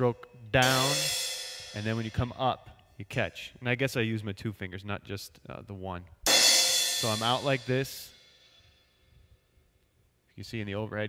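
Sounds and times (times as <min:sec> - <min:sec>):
choked crash cymbal ring: 0:00.6 - 0:02.2, 0:06.3 - 0:08.8.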